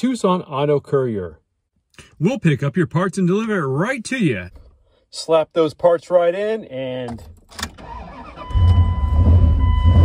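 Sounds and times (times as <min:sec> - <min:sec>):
engine cranking and idling: 0:07.1 - 0:10.0
steady electronic dash tone: 0:08.2 - 0:10.0.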